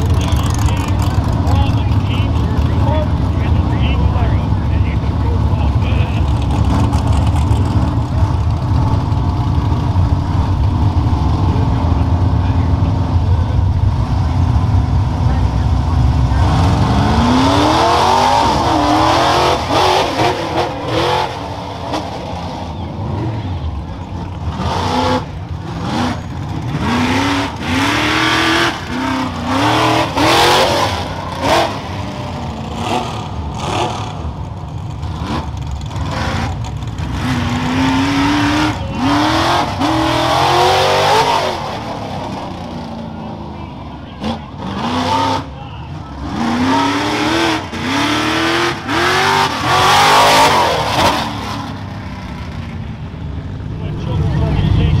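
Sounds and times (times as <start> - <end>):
truck engine idling and revving: 0.0 - 55.0.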